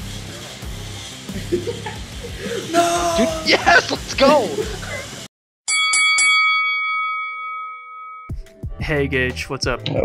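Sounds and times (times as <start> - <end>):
fight bell ringing: 5.7 - 8.4.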